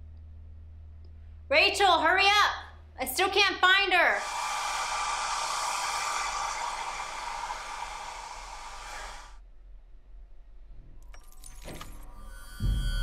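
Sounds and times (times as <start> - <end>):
hair dryer blowing: 4.2 - 9.4.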